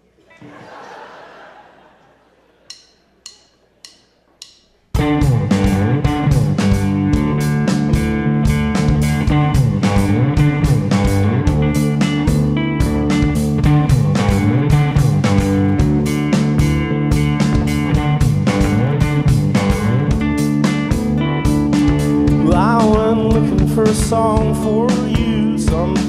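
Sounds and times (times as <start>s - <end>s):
drumstick clicks: 2.6s - 5.0s
rock band playing: 4.9s - 26.0s.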